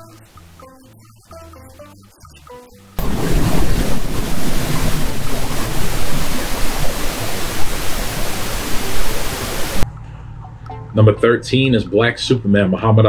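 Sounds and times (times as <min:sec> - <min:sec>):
loud static hiss: 0:03.0 - 0:09.8.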